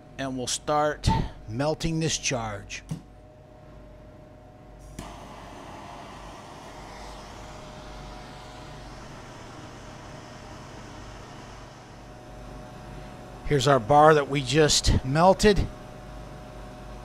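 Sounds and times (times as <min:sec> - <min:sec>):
torch flame hissing: 0:04.8 - 0:13.4
gas torch ignition click: 0:04.9 - 0:05.5.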